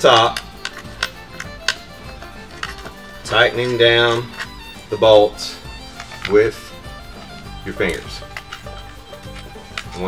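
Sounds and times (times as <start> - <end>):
faint background music: 0.0 - 10.0
metallic clicks of bolt and washer: 0.0 - 10.0.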